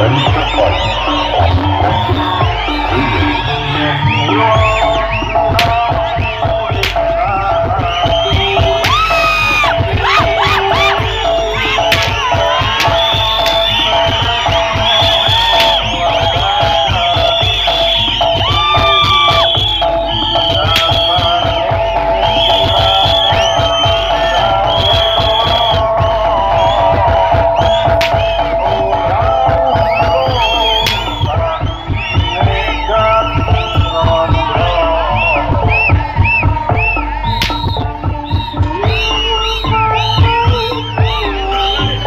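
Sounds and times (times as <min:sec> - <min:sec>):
crowd shouting and cheering: 0:00.0 - 0:42.0
dense drumming: 0:00.0 - 0:42.0.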